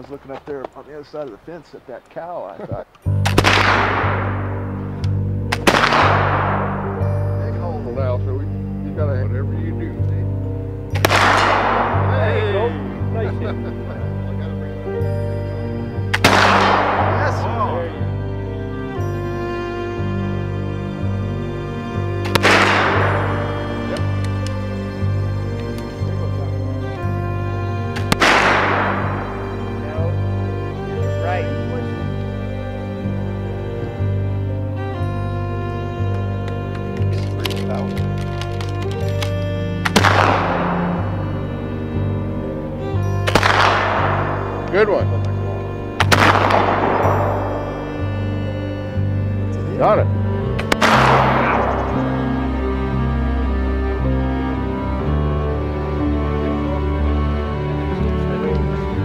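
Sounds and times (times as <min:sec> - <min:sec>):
background music with steady beat: 0:03.0 - 0:59.0
rifle shot: 0:03.2 - 0:04.8, 0:05.5 - 0:07.0, 0:10.9 - 0:12.1, 0:16.1 - 0:17.5, 0:22.3 - 0:24.0, 0:28.0 - 0:29.4, 0:39.8 - 0:41.2, 0:43.3 - 0:44.6, 0:46.0 - 0:47.6, 0:50.6 - 0:51.9.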